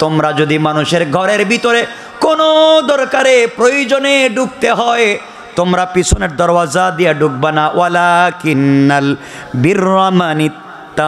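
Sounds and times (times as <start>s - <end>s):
man preaching in singsong: 0.0s - 11.0s.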